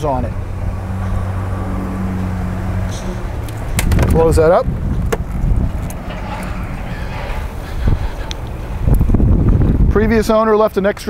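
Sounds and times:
wind buffeting microphone: 0:00.0 - 0:10.9.

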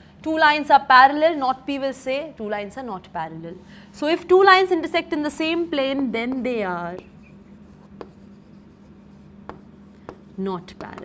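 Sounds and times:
chalk tapping on board: 0:06.2 - 0:11.0
chalk scratching on chalkboard: 0:06.3 - 0:11.0.

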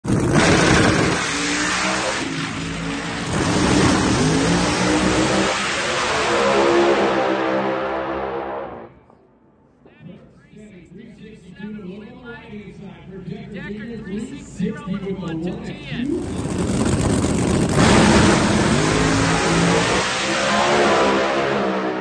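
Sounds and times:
drag racing car engines at full throttle: 0:00.0 - 0:08.9, 0:11.1 - 0:22.0.

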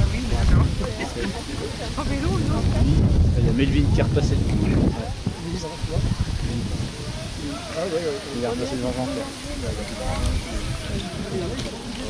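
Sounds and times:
people talking: 0:00.0 - 0:12.0
wind rumble on microphone: 0:00.0 - 0:12.0.

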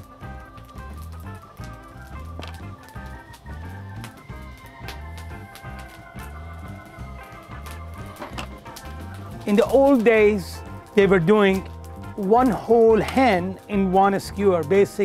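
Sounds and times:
music with bass beat and chords: 0:00.0 - 0:15.0.

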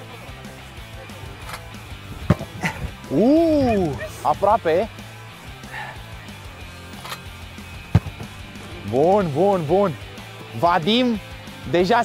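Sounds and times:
quiet background music: 0:00.0 - 0:12.0
football being kicked: 0:02.2 - 0:02.6, 0:07.8 - 0:08.4.

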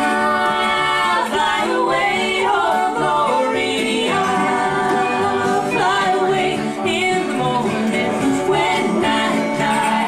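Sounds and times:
acoustic guitars: 0:00.0 - 0:10.0
upright bass: 0:00.0 - 0:10.0
women singing in harmony: 0:00.0 - 0:10.0.

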